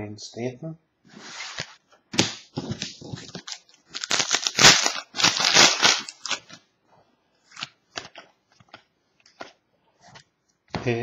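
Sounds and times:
foil wrapper tearing and crinkling: 3.2s - 6.5s.

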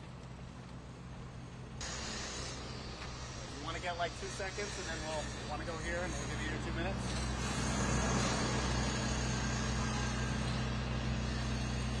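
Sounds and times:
street noise: 0.0s - 12.0s.

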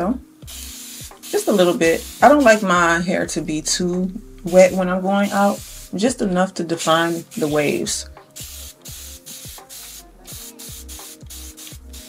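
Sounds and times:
spray bottle hissing bursts: 0.4s - 2.9s, 4.5s - 6.0s, 7.0s - 12.0s
music with deep bass beat: 1.9s - 5.0s, 5.6s - 6.3s, 7.9s - 12.0s.

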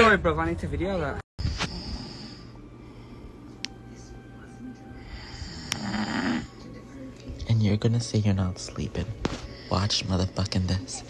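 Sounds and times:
man snoring: 1.5s - 2.6s, 5.0s - 6.6s.

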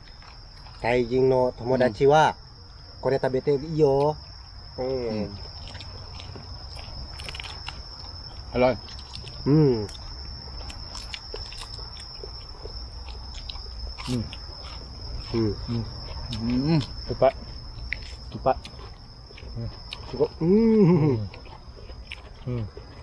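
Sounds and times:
chewing clicks: 0.0s - 2.0s, 3.5s - 23.0s
high-pitched insect drone: 0.0s - 23.0s
men humming while tasting: 9.4s - 10.0s, 19.6s - 21.4s, 22.4s - 22.8s.

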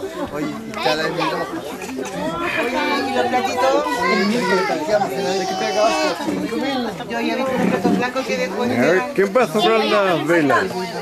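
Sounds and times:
adults and children chattering: 0.0s - 11.0s.

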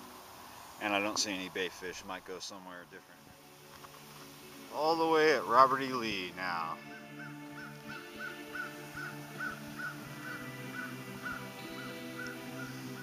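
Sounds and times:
music of sustained tones: 2.5s - 13.0s
bird chirping: 6.6s - 13.0s.

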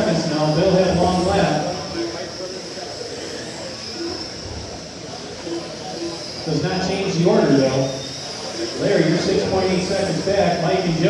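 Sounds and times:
high whine of toy car motors: 0.0s - 11.0s.

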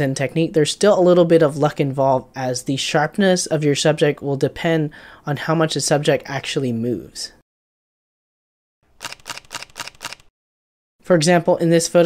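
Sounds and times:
camera shutter burst clicks: 9.0s - 10.3s.

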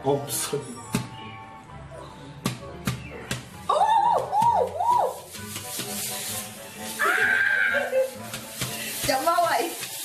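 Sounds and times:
background music: 0.0s - 10.0s
high squealing cry: 7.0s - 8.0s.

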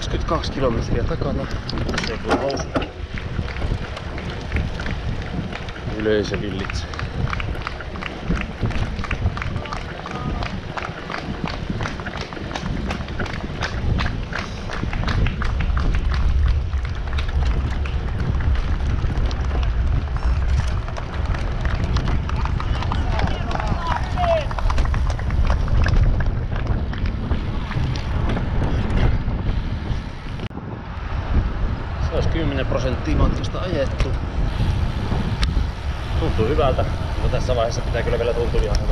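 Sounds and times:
tyre and road noise: 0.0s - 38.9s
wind buffeting microphone: 0.0s - 38.9s
bike clicks and knocks: 1.4s - 23.8s.

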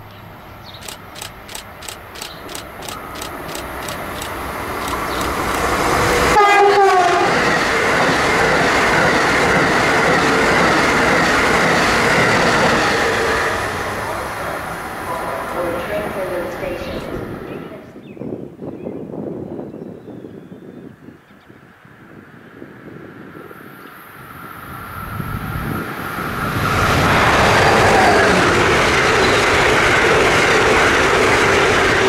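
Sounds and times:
rush of train wheels and air: 0.0s - 32.0s
train wheels clicking: 0.7s - 6.4s
train horn blast: 6.1s - 7.5s.

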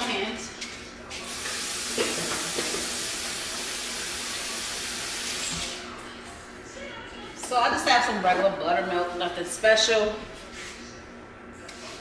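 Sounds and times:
tap water running into sink: 1.3s - 5.8s.

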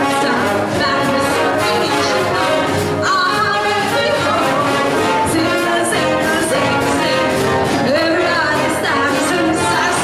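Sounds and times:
jazz band playing: 0.0s - 10.0s
woman singing: 0.0s - 10.0s.

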